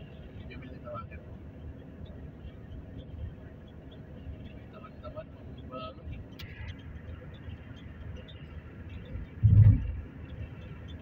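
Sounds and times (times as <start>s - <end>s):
car road noise rumble and hiss: 0.0s - 11.0s
loud low thump: 9.4s - 10.0s.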